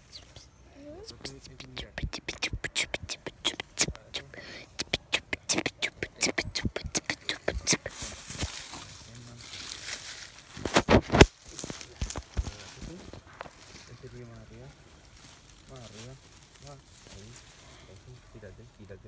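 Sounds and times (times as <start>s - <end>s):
faint voices: 0.0s - 19.0s
phone rustling through brush: 7.5s - 13.9s.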